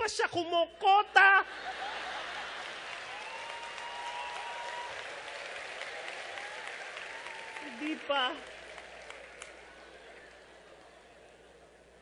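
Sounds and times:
audience applauding: 0:01.6 - 0:11.7.

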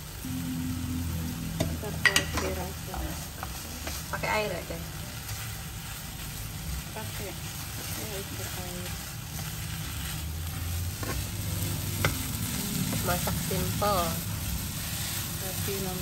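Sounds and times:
food sizzling in a pan: 0:00.0 - 0:16.0.

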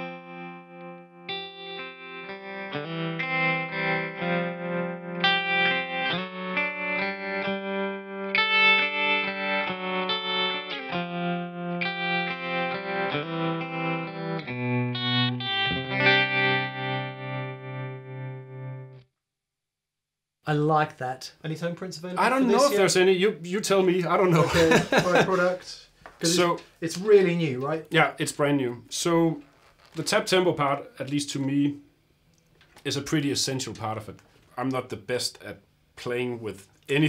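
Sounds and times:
electric guitar chords with tremolo: 0:00.0 - 0:19.0.

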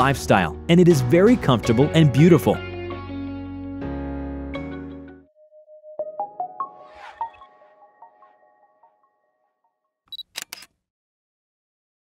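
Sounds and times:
camera shutter clicks: 0:10.1 - 0:10.7.

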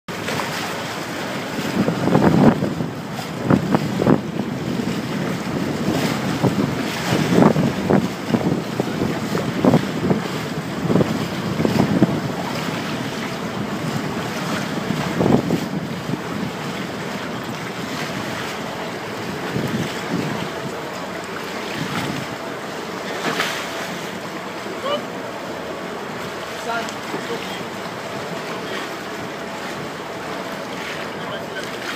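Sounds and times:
wind buffeting microphone: 0:00.1 - 0:23.8
sea water rushing: 0:00.1 - 0:31.9.

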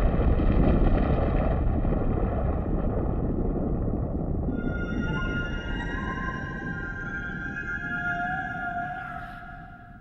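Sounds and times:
low rumbling drone: 0:00.0 - 0:10.0
high held tones: 0:04.6 - 0:10.0.

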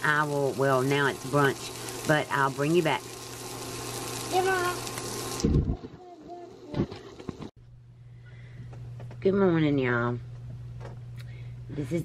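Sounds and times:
sausages sizzling in a frying pan: 0:00.0 - 0:05.6.

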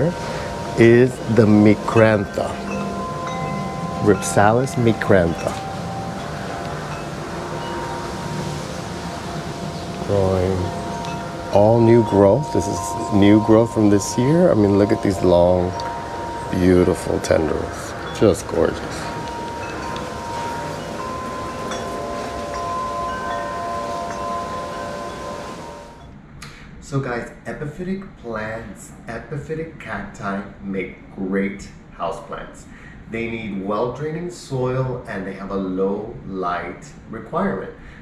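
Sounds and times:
wind chime tones: 0:00.0 - 0:26.1
wind: 0:00.0 - 0:38.0.

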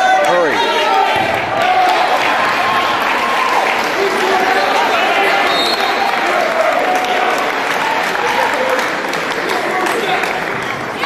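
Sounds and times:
crowd voices: 0:00.0 - 0:11.0
spectators applauding: 0:00.0 - 0:11.0.

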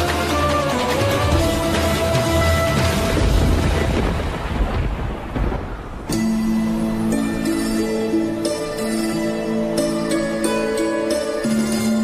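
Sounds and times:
low rumbling rushing noise: 0:00.9 - 0:07.5.

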